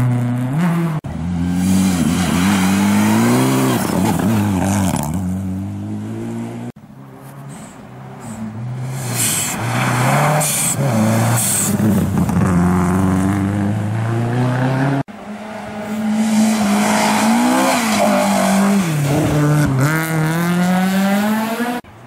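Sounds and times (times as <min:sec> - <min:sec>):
rally car engine at full throttle: 0:00.0 - 0:22.0.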